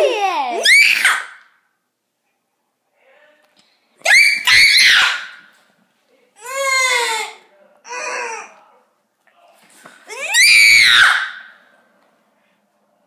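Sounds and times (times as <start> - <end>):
child screaming: 0.0 - 1.4, 4.1 - 5.3, 10.1 - 11.4.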